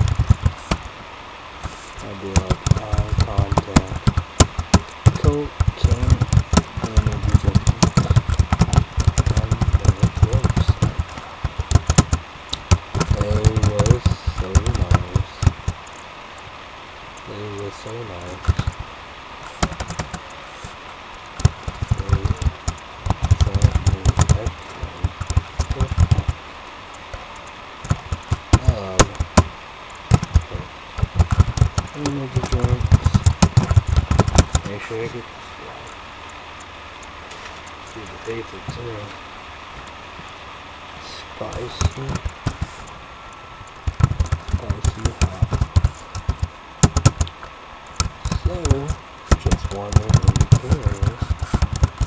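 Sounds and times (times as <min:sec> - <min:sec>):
keyboard typing: 0:00.0 - 0:00.9, 0:01.6 - 0:16.0, 0:18.1 - 0:18.8, 0:19.5 - 0:20.7, 0:21.4 - 0:26.4, 0:27.8 - 0:29.5, 0:30.1 - 0:35.2, 0:41.4 - 0:43.0, 0:43.7 - 0:47.4, 0:48.0 - 0:52.0.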